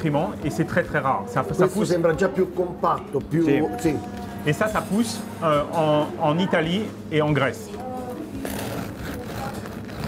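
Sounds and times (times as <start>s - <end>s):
faint voices: 0.0s - 10.0s
knife sawing through crusty bread: 8.4s - 10.0s.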